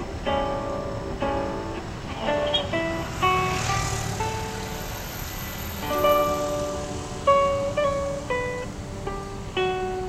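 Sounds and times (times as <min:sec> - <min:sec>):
acoustic guitar plucked notes: 0:00.0 - 0:10.0.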